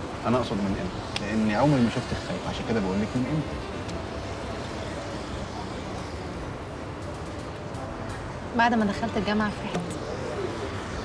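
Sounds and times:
low rumble of distant traffic: 0.0s - 11.0s.

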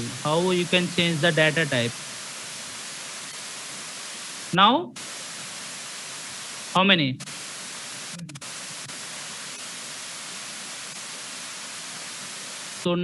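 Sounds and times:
microphone static hiss: 0.0s - 13.0s.

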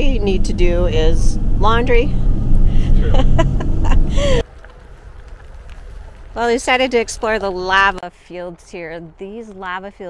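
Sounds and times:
road and engine rumble in van: 0.0s - 8.0s
faint low outdoor background: 0.0s - 10.0s.

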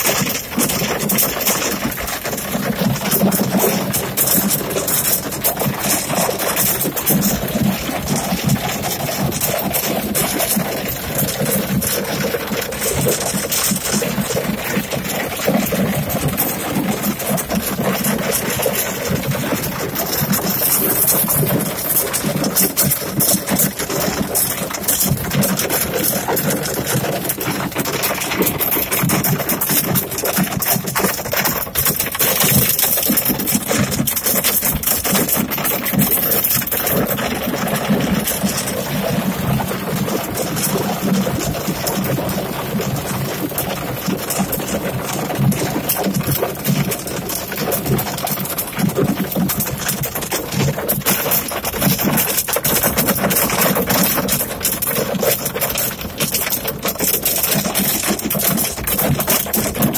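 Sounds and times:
hail and rain on car roof: 0.0s - 59.9s.

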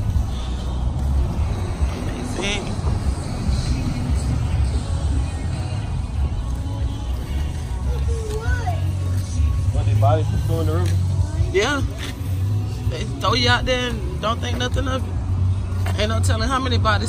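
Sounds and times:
pickup truck driving: 0.0s - 17.0s
road traffic rumble: 0.0s - 17.0s
voices: 0.0s - 17.0s.

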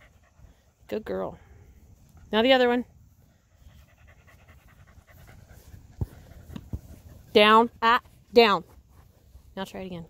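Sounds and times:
dog panting: 0.0s - 1.0s, 3.3s - 7.4s.

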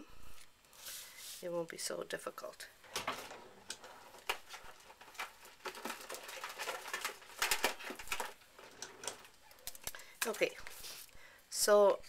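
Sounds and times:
craft items clicking and rustling: 2.9s - 10.8s.

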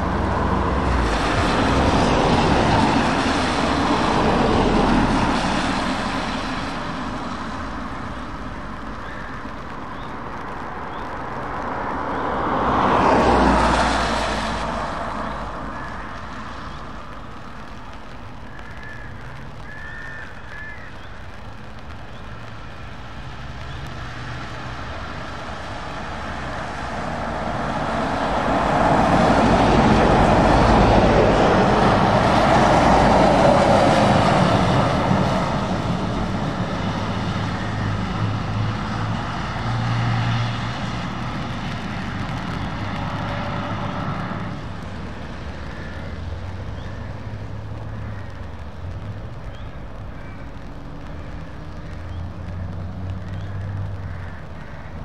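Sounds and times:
diesel engines passing: 0.0s - 18.5s, 21.1s - 55.0s
tyres hissing on wet road: 0.0s - 55.0s.

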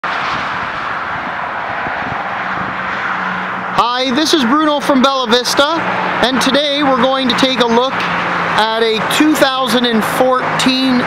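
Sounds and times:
steady outdoor rushing noise: 0.0s - 11.0s.

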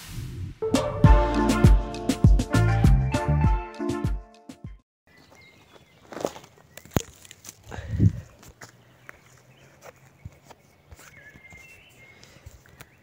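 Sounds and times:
footsteps on pine needles: 5.1s - 13.0s.

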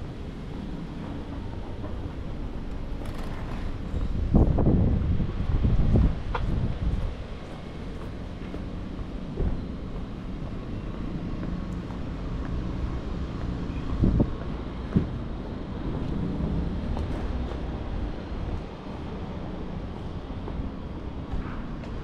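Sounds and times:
wind buffeting microphone: 3.7s - 10.0s, 13.8s - 22.0s.

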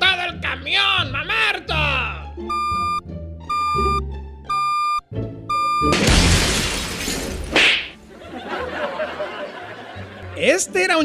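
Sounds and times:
reversing beeper: 2.5s - 6.0s
loud crash with shattering: 5.9s - 8.0s.

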